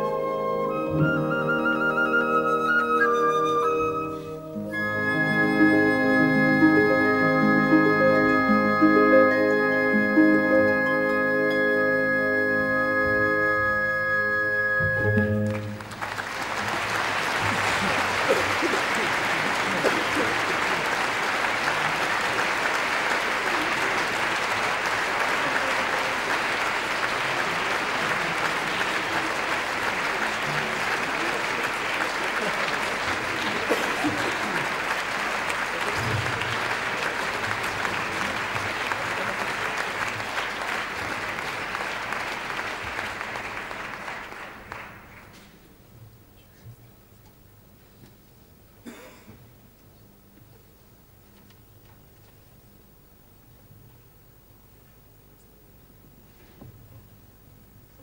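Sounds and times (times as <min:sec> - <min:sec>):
music closing note: 0:00.0 - 0:15.9
audience applauding: 0:15.0 - 0:45.6.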